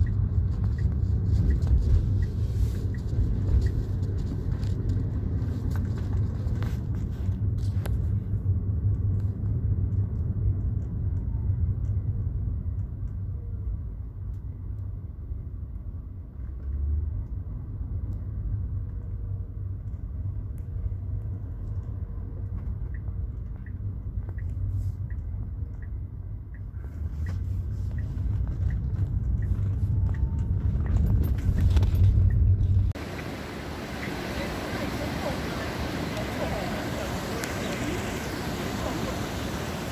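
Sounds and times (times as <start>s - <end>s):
car engine and road rumble: 0.0s - 39.9s
light hiss: 33.0s - 39.9s.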